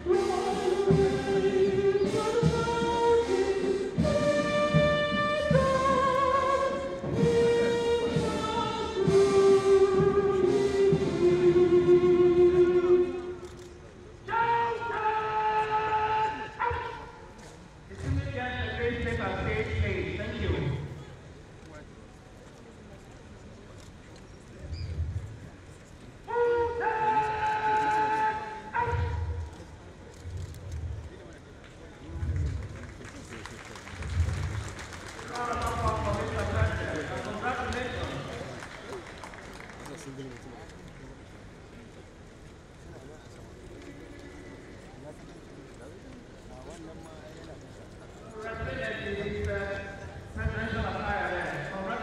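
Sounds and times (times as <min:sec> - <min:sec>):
crowd talking and calling out: 0:00.0 - 0:52.0.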